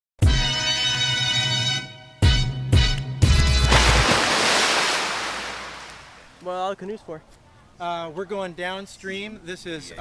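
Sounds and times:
ocean wave swoosh: 3.7 - 6.4.

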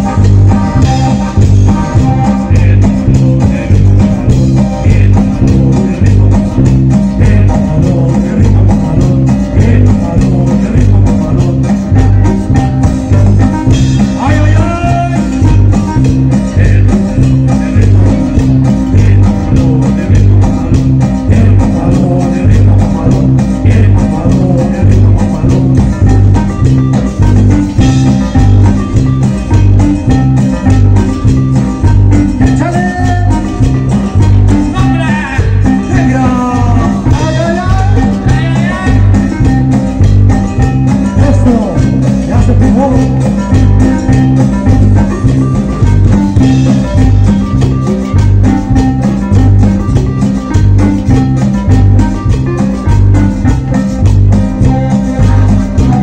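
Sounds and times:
latin dance band playing: 0.0 - 56.0.

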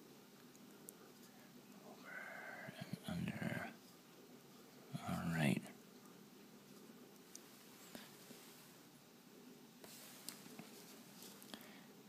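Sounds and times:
man speaking softly: 1.8 - 3.8, 4.9 - 5.8.

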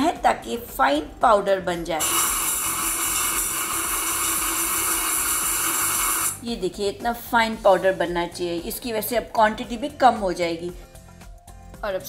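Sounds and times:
mixer grinder whirring: 2.0 - 6.4.

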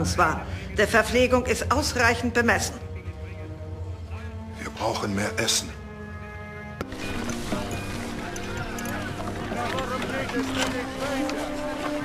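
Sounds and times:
crowd voices: 6.8 - 12.0.

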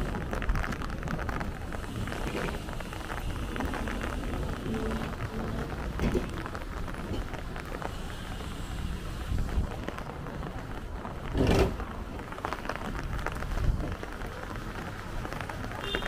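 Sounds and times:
low street rumble: 0.0 - 16.0
small crackles: 0.0 - 16.0.

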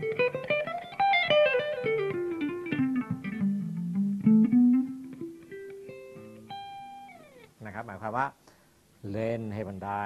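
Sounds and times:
man speaking: 7.6 - 8.4, 9.0 - 10.0.

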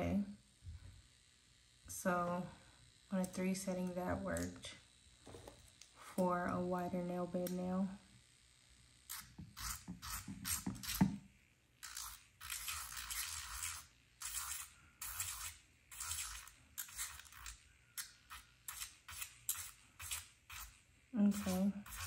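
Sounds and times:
electric nail drill grinding: 0.0 - 22.0.

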